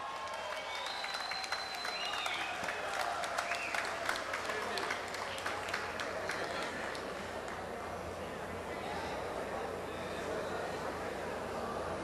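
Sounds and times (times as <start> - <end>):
audience applauding: 0.0 - 7.7.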